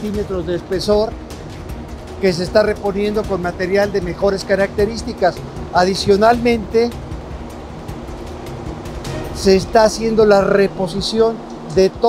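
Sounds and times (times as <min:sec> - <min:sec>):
low rumble of tunnel ambience: 0:00.0 - 0:12.0.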